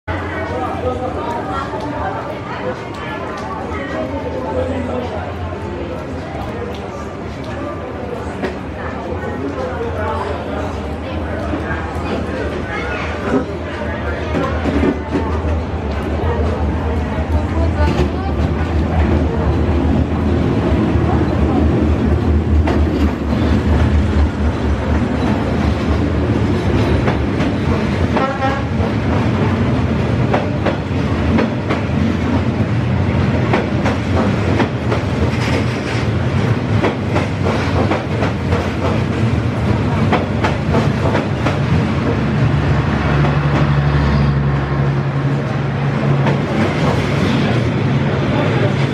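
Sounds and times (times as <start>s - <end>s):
train rumble: 0.2s - 48.9s.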